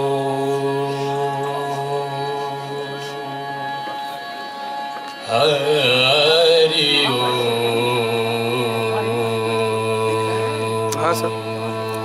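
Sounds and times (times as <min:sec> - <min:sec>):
devotional chanting: 0:00.0 - 0:12.0
drone: 0:00.0 - 0:12.0.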